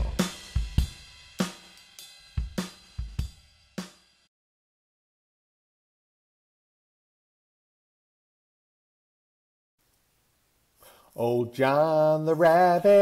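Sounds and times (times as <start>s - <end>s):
drum kit fill: 0.0s - 4.3s.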